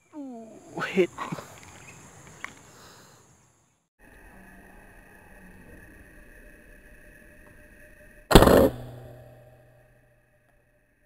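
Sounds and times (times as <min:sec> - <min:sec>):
air rifle shot: 0:08.3 - 0:09.7.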